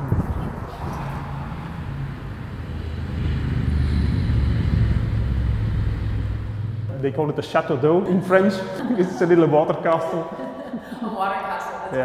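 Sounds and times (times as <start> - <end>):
vehicle engine running: 0.0 - 7.2.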